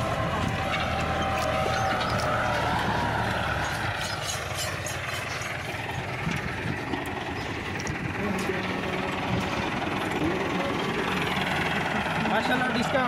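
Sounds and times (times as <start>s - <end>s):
tractor diesel engine running: 0.0s - 13.0s.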